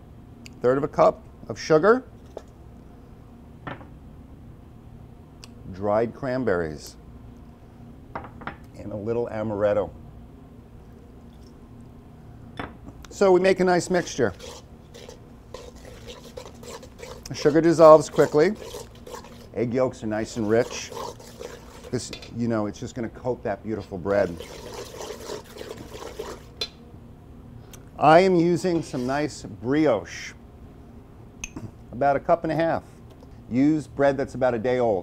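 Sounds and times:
low background hum: 0:00.0 - 0:35.0
liquid swishing in metal bowl: 0:13.1 - 0:22.9, 0:23.8 - 0:26.6, 0:28.7 - 0:29.3.

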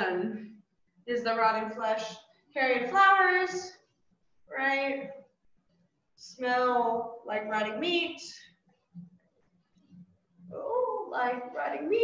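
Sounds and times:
woman speaking: 0:00.0 - 0:00.4, 0:01.1 - 0:03.8, 0:04.5 - 0:05.1, 0:06.2 - 0:08.4, 0:10.5 - 0:12.0.

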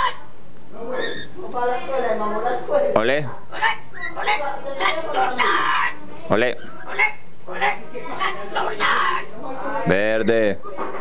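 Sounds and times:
parrot talking chants: 0:00.9 - 0:01.4, 0:03.5 - 0:09.3
parrot short calls: 0:01.0 - 0:01.4, 0:03.5 - 0:06.0, 0:06.6 - 0:09.3.

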